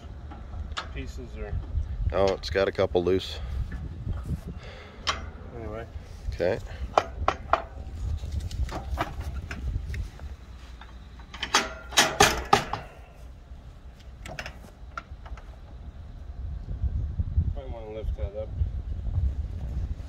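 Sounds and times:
loud rattling clanks: 0:04.6 - 0:05.7, 0:10.8 - 0:13.2
metal ramp clanking: 0:04.9 - 0:05.8, 0:10.8 - 0:13.3.

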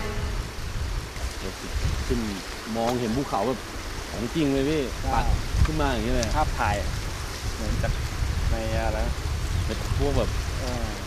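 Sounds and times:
fast-flowing river rushing: 0:00.0 - 0:06.7.

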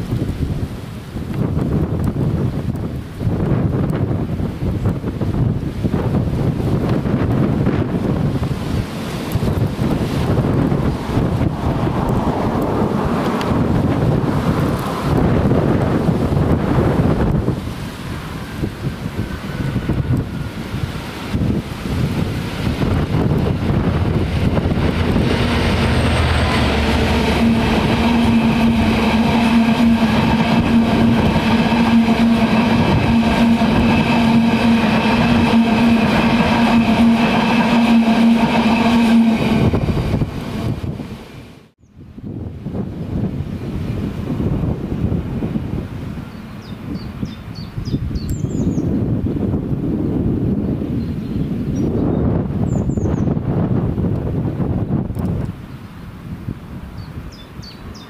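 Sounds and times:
diesel locomotive engine drone: 0:00.0 - 0:51.0, 0:51.6 - 0:58.0
wind noise: 0:00.0 - 0:58.0
bird chirps: 0:46.4 - 0:48.9, 0:57.0 - 0:58.0.

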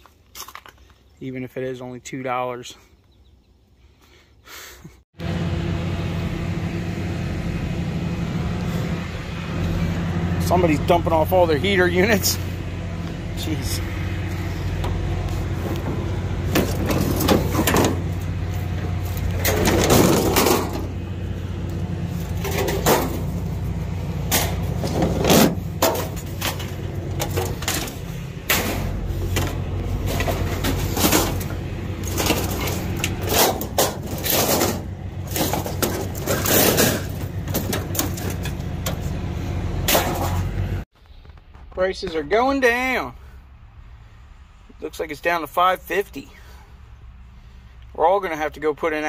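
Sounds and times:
low engine hum: 0:05.2 - 0:41.5
sheet metal clanging and crashing: 0:15.9 - 0:21.0, 0:22.2 - 0:23.6, 0:24.2 - 0:39.1, 0:39.8 - 0:40.6.

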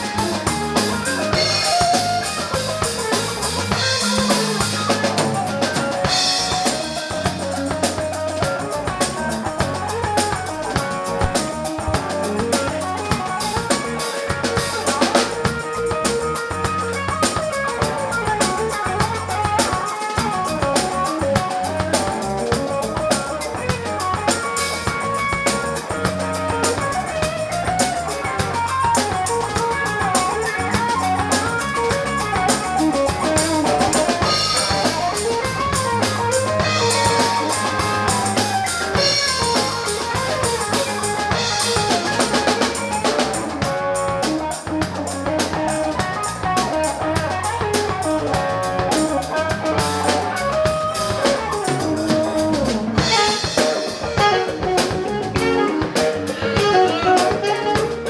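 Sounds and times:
drum kit beat: 0:00.0 - 0:58.0
electric guitar playing: 0:00.0 - 0:58.0.

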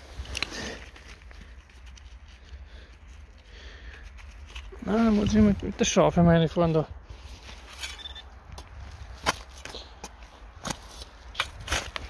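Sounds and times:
soil being dug and broken up: 0:06.6 - 0:12.0.

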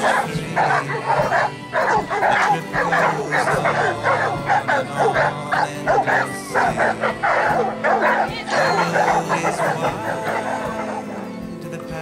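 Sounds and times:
dogs barking: 0:00.0 - 0:11.6
background music: 0:00.0 - 0:12.0.

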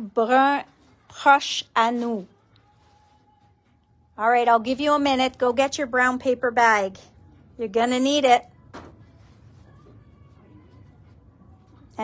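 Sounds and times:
woman's voice: 0:00.0 - 0:02.4, 0:04.2 - 0:08.5.

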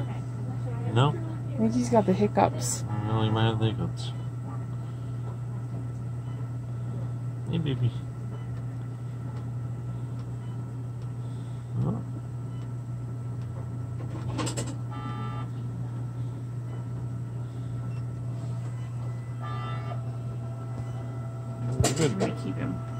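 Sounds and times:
equipment humming: 0:00.0 - 0:22.9.

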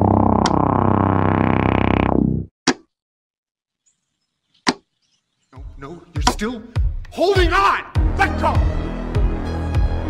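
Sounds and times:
music with deep bass: 0:08.0 - 0:10.0.

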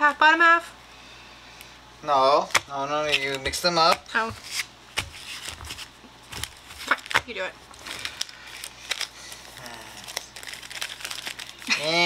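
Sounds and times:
foil wrappers crinkling: 0:02.4 - 0:12.0
sharp foil crackles: 0:04.4 - 0:12.0.

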